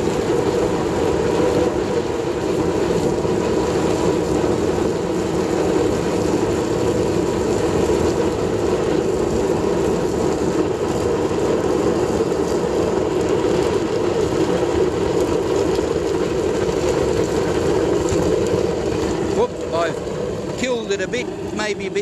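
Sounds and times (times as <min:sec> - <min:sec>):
oil burner roaring with fan: 0:00.0 - 0:22.0.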